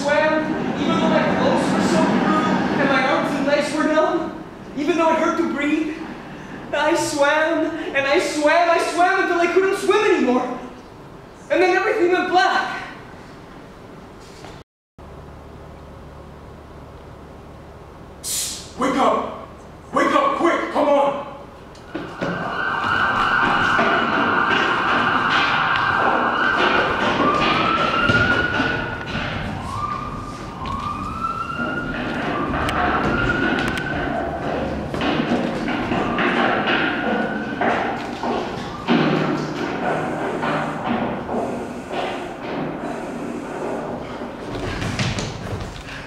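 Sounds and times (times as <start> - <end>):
police sirens wailing: 0.0 - 4.6, 21.7 - 43.6
thuds and knocks: 21.9 - 42.9, 43.6 - 45.9.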